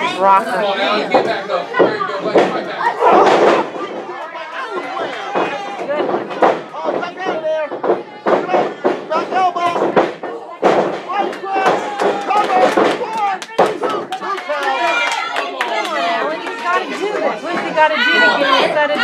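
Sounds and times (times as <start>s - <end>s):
crowd shouting: 0.0s - 19.0s
slaps and thuds in wrestling ring: 1.1s - 4.2s, 4.8s - 14.1s.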